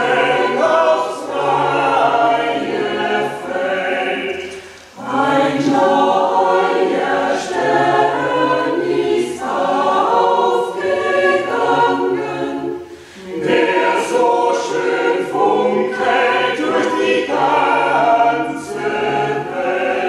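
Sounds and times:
mixed choir singing: 0.0s - 20.0s.

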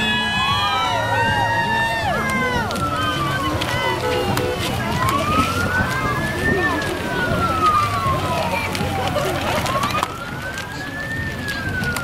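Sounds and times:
siren wailing: 0.0s - 12.0s.

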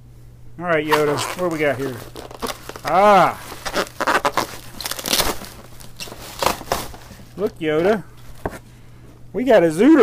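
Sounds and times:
plastic bag crinkling: 0.7s - 8.5s.

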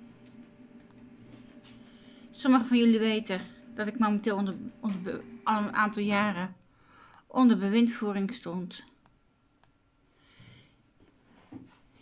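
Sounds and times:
soft breath: 1.7s - 2.4s, 6.7s - 7.3s, 10.1s - 10.8s.

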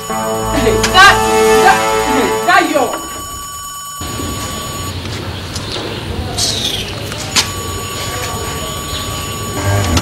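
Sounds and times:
steady background tone: 0.0s - 5.6s.

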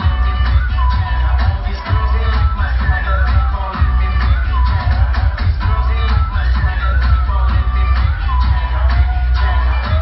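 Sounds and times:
loud dance music with heavy bass: 0.0s - 10.0s.

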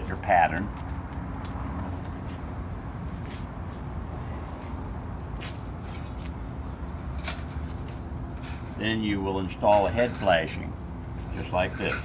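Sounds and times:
shingles and metal flashing rustling: 7.0s - 9.0s.

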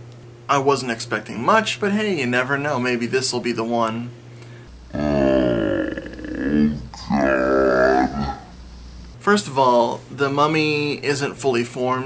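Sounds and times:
people talking: 0.5s - 4.1s, 5.0s - 8.5s, 9.2s - 12.0s
person groaning: 4.9s - 8.6s.

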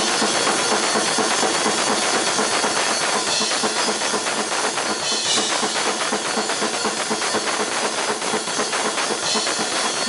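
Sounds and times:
cymbals crashing: 0.0s - 10.0s
drum kit blast beat: 0.0s - 10.0s.

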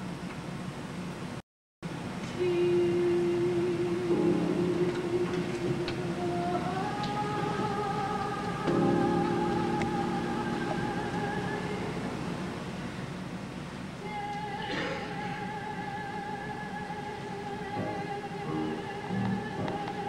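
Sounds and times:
soprano singing long notes: 2.4s - 12.6s, 14.0s - 20.0s
piano chords: 2.6s - 13.2s, 17.6s - 20.0s.

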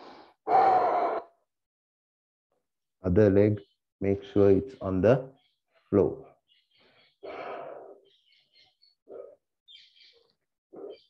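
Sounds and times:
man breathing in: 0.0s - 0.4s.

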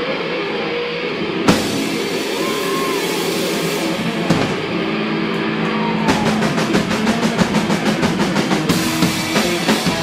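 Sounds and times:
loud live rock band: 0.0s - 10.0s.

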